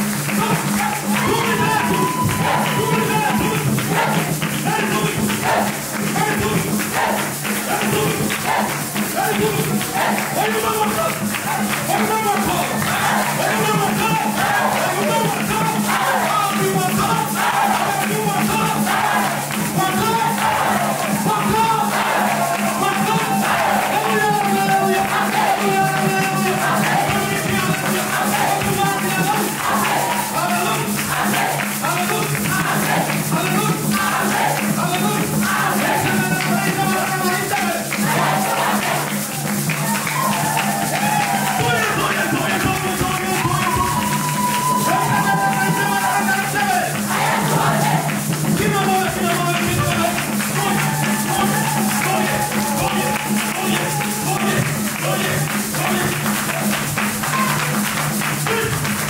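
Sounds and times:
group of voices singing: 0.0s - 59.0s
steady percussion beat: 0.0s - 59.0s.

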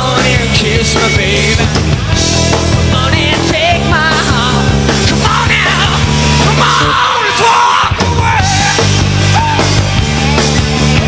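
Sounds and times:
person singing: 0.0s - 1.8s, 2.8s - 9.6s
live rock band playing: 0.0s - 11.0s.

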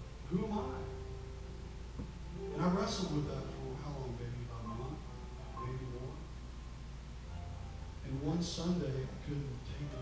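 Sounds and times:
low electrical hum: 0.0s - 10.0s
man speaking into microphone: 0.3s - 1.0s, 2.6s - 6.2s, 8.0s - 10.0s.

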